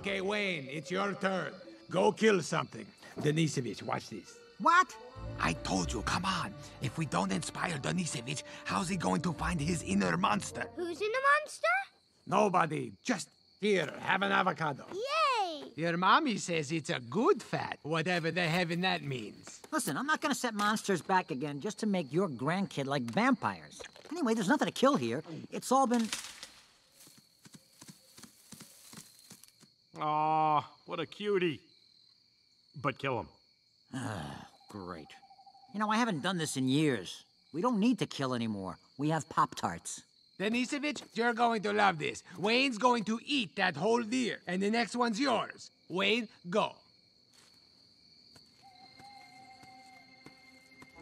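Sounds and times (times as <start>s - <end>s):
insect trill: 0.0s - 51.0s
deer hoofsteps: 26.9s - 29.8s.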